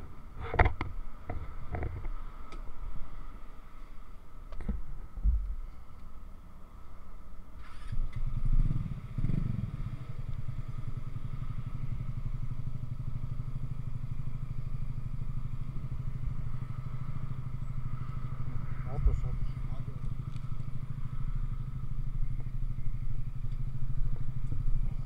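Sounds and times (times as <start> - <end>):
motorcycle engine starting and idling: 7.6 - 25.0.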